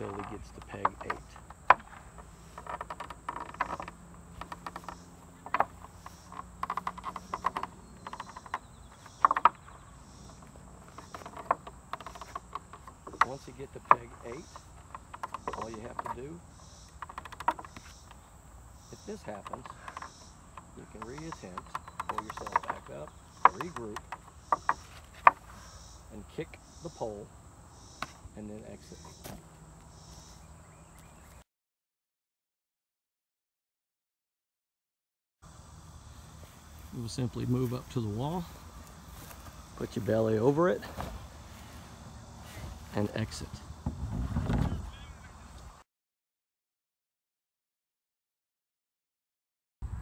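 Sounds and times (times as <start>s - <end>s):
wooden pegs knocking in board: 0.0s - 18.2s, 18.9s - 25.6s.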